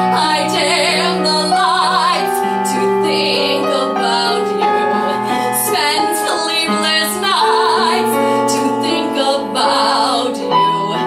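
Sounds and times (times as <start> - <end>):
piano: 0.0 - 11.0
woman singing into microphone: 0.0 - 11.0.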